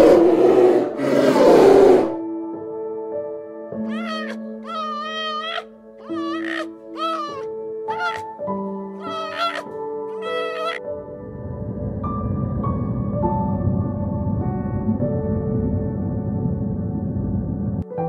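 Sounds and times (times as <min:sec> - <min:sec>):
soft sustained music: 0:00.0 - 0:18.0
high meow-like animal calls: 0:03.8 - 0:08.3, 0:09.0 - 0:10.8.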